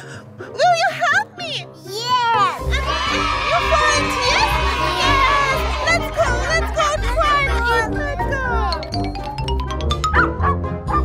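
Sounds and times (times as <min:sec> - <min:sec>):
background music: 0:00.0 - 0:11.0
woman and child exclaiming: 0:00.7 - 0:08.7.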